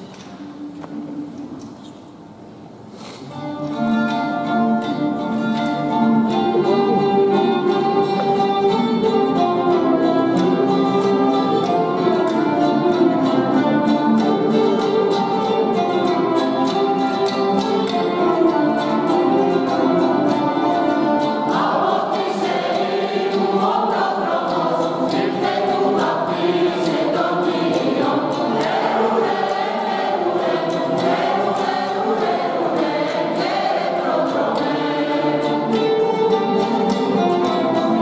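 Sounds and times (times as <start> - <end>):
instrumental accompaniment: 0.0 - 38.0
mixed choir singing a carol: 5.2 - 38.0.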